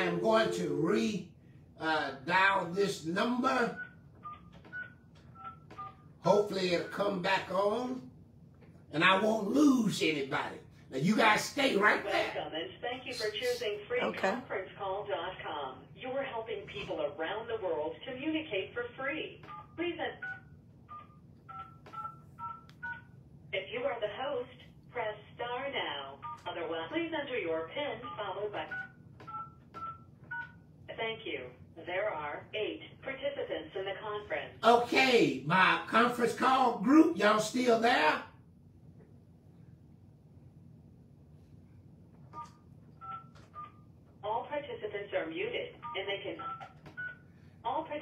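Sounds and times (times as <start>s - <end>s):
voice over telephone speaker: 0.0s - 1.2s, 1.8s - 3.8s, 10.2s - 18.4s, 30.9s - 38.2s, 44.2s - 46.6s
phone keypad beeps: 28.0s - 30.6s, 42.4s - 43.8s, 46.4s - 47.2s.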